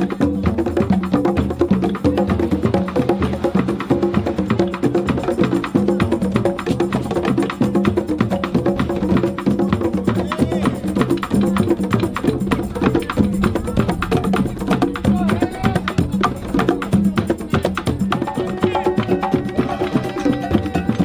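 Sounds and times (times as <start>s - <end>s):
hand drums playing fast rhythm: 0.0s - 21.0s.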